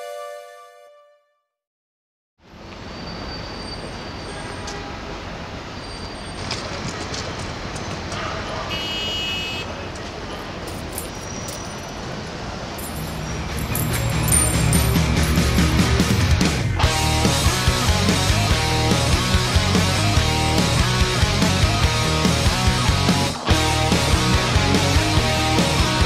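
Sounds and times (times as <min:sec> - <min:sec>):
music: 0:00.0 - 0:01.6, 0:13.6 - 0:26.0
street traffic noise: 0:02.4 - 0:26.0
short high horn toot: 0:08.7 - 0:09.7.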